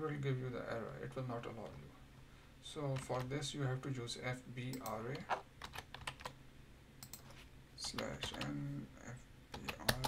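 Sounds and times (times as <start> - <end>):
keyboard typing clicks: 5.6 - 6.4, 7.0 - 8.6, 9.5 - 10.0.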